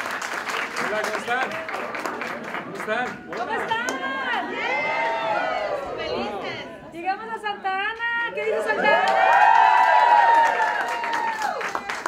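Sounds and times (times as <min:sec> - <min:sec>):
crowd chatter: 0:01.8 - 0:08.8.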